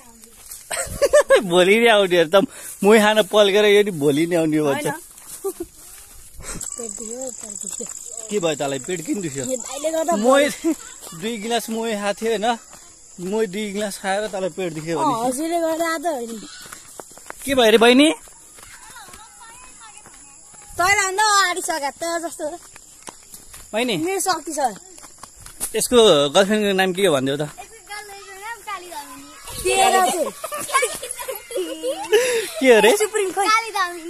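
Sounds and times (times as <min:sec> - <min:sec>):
cicadas droning: 0:00.0 - 0:34.0.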